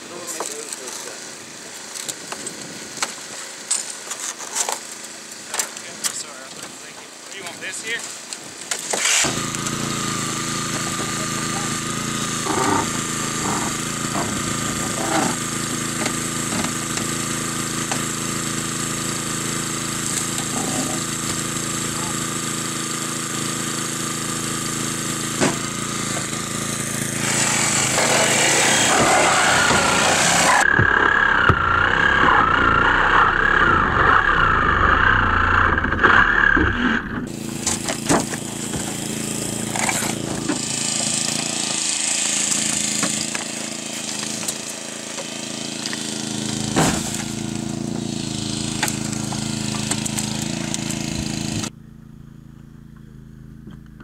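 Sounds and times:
small gasoline engine running: 0:08.8 - 0:54.0
wavering whine: 0:27.0 - 0:38.0.

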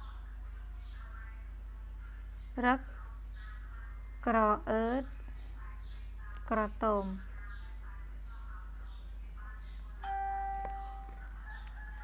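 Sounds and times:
ringing chime: 0:10.0 - 0:11.2.

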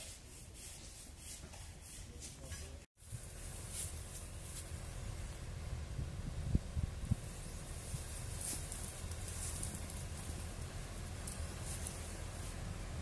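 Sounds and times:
wind rumbling on microphone: 0:03.0 - 0:13.0
faint rustling: 0:07.1 - 0:12.7.

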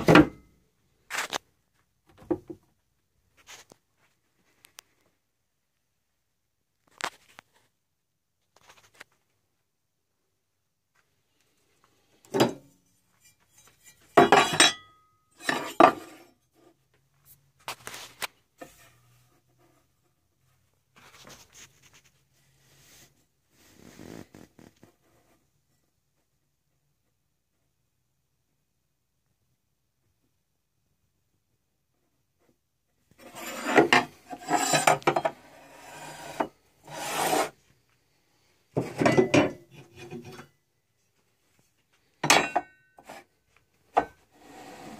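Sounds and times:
metal tools clinking on workbench: 0:13.6 - 0:16.2, 0:42.2 - 0:42.9
scraping on wooden surface: 0:33.2 - 0:37.6, 0:43.9 - 0:44.9.

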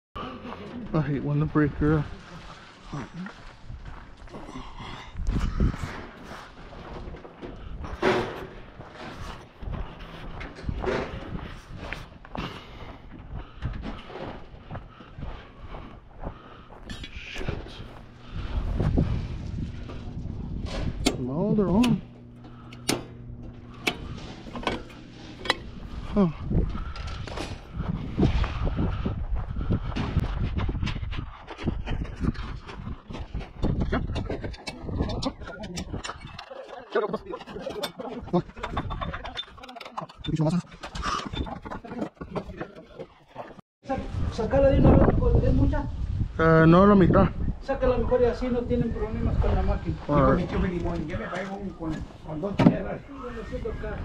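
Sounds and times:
footsteps on dirt: 0:00.2 - 0:21.0, 0:22.1 - 0:35.0
low steady hum: 0:07.4 - 0:30.2
circuit breaker switching on: 0:21.0 - 0:25.8.

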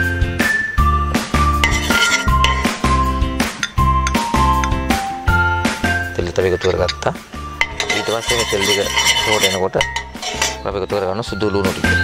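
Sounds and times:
metal ladle scraping pot: 0:01.5 - 0:04.8, 0:06.2 - 0:10.8.

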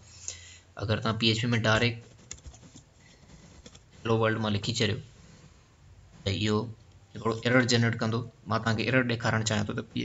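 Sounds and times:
person speaking: 0:00.8 - 0:05.4, 0:06.1 - 0:10.0
computer keyboard typing: 0:02.1 - 0:02.8.

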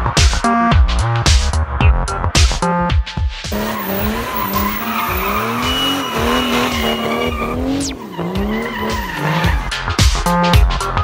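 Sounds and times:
electronic music with heavy beat: 0:00.0 - 0:11.0
tyre squeal and skidding: 0:03.5 - 0:10.1
car engine revving: 0:03.5 - 0:10.6.

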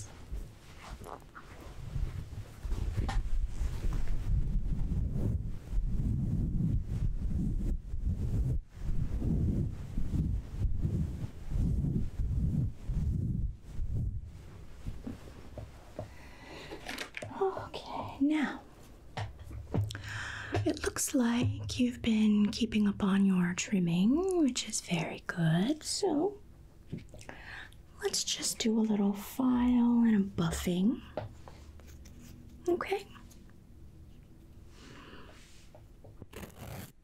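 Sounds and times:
cloth towel rubbing: 0:00.0 - 0:17.6, 0:31.4 - 0:37.0.

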